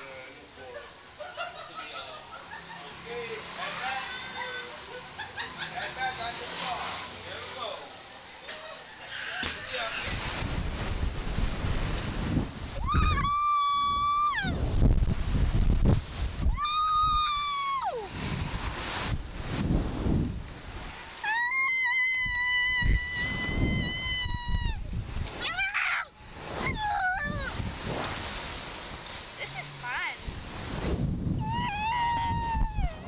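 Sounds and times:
wind on microphone: 0:09.9 - 0:25.7, 0:26.3 - 0:29.3, 0:30.2 - 0:33.0
girl screaming: 0:12.8 - 0:14.6, 0:16.5 - 0:18.1, 0:21.2 - 0:27.6, 0:31.4 - 0:33.0.

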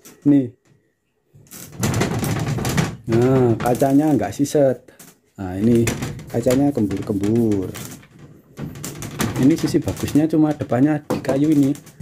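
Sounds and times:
wardrobe door rattling: 0:01.5 - 0:04.4, 0:05.5 - 0:12.0.

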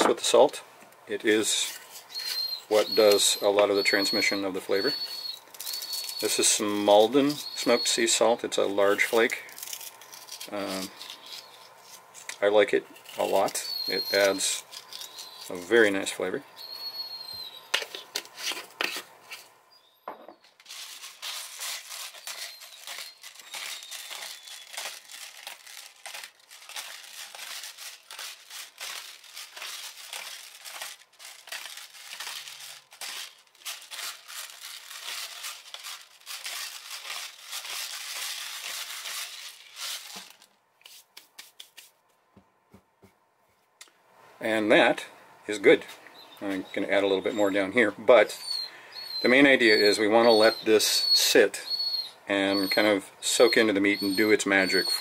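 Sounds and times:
pepper grinder crunching peppercorns: 0:01.4 - 0:19.5, 0:20.5 - 0:41.9, 0:48.4 - 0:51.5, 0:52.5 - 0:55.0.

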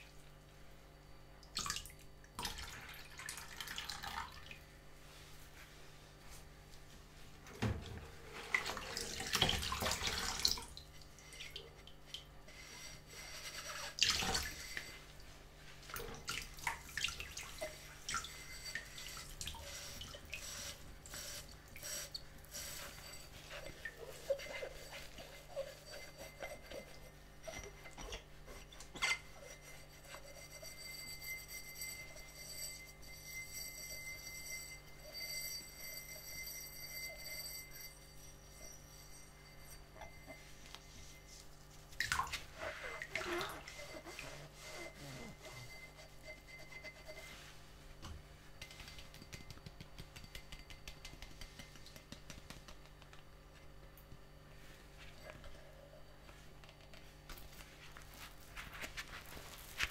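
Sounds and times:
water sloshing and dripping: 0:01.4 - 0:04.7, 0:07.6 - 0:12.4, 0:13.6 - 0:29.3, 0:41.8 - 0:44.2
sponge scrubbing glass tumbler: 0:08.1 - 0:47.8, 0:57.2 - 0:59.9
faint steady high tone: 0:16.7 - 0:51.5
scrubber rubbing against glass: 0:17.5 - 0:32.7, 0:42.5 - 0:47.6.

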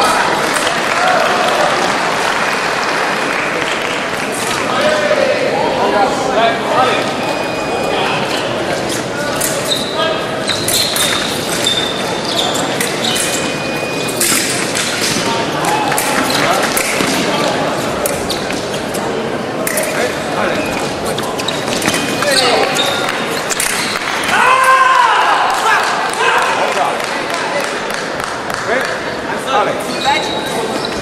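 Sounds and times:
overlapping voices echoing: 0:00.0 - 0:09.3
shoes squeaking on floor: 0:06.8 - 0:24.3, 0:29.7 - 0:31.0
clicks of fencing blades: 0:10.6 - 0:11.6, 0:14.1 - 0:15.3, 0:19.6 - 0:20.0, 0:23.5 - 0:24.0.

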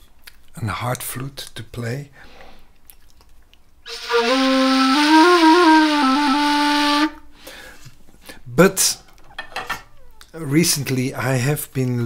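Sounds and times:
breathy ney flute note: 0:03.9 - 0:07.3.

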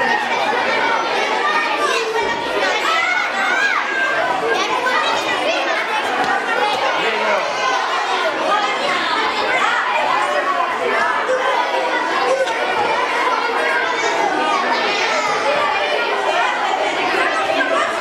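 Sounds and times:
children chattering: 0:00.0 - 0:18.0.

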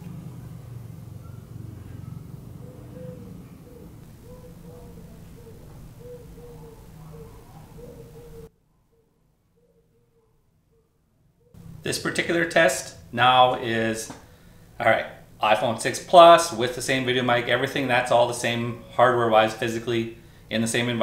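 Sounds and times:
steady low rumble: 0:03.9 - 0:08.5, 0:11.6 - 0:17.2.

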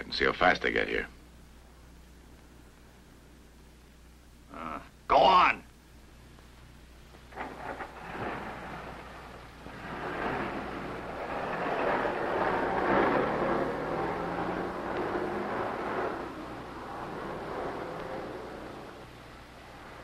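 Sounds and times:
car engine and road noise: 0:07.2 - 0:20.0.

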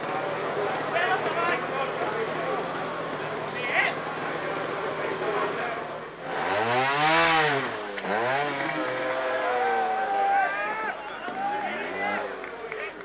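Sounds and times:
motorcycle engine revving: 0:00.0 - 0:13.0.

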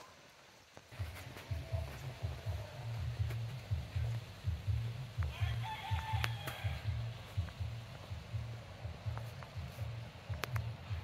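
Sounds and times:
music with pulsing beat: 0:00.9 - 0:11.0
rooster crowing: 0:05.2 - 0:07.2.

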